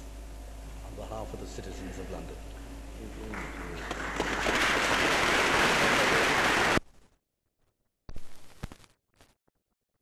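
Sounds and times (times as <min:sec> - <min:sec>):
audience applauding: 0:03.2 - 0:06.8.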